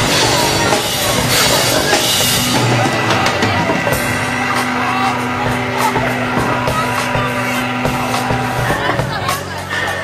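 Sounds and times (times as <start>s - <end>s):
drum kit hits: 0.0s - 10.0s
live rock band playing: 0.0s - 10.0s.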